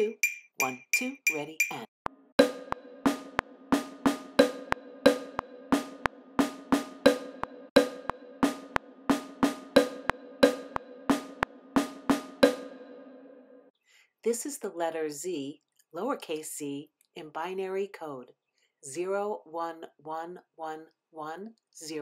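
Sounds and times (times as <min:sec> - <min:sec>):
wood block strikes: 0:00.0 - 0:13.0
snare drum strikes: 0:02.4 - 0:12.8.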